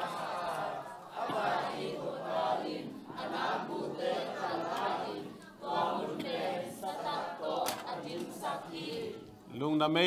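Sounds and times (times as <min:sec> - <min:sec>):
congregation reciting in unison: 0:00.0 - 0:09.6.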